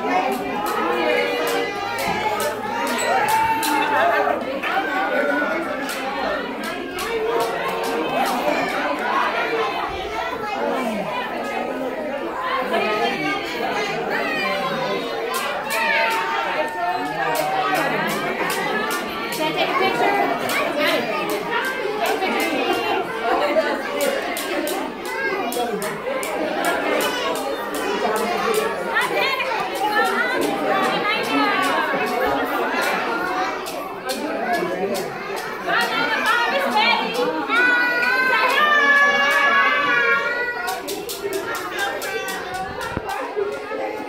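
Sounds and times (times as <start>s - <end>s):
children and adults chattering: 0.0s - 44.0s
people clapping in rhythm: 40.6s - 43.2s.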